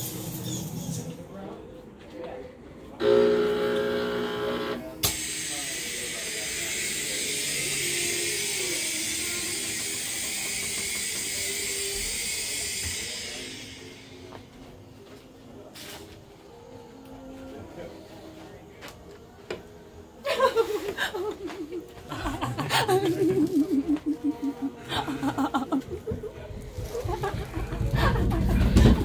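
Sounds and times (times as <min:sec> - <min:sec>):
buzzing horn-like scare tone: 0:03.0 - 0:09.8
fog machine hissing: 0:03.0 - 0:15.0, 0:20.3 - 0:28.8.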